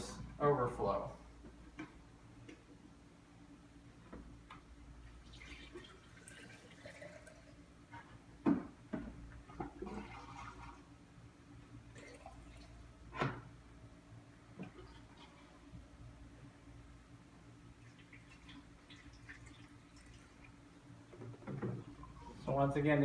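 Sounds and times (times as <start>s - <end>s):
liquid pouring from jug: 5.2s - 7.6s, 9.6s - 10.9s, 11.9s - 12.8s, 17.8s - 20.6s.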